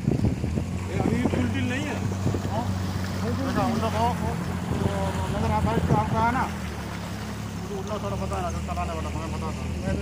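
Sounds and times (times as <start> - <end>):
outboard motor running: 0.0 - 10.0.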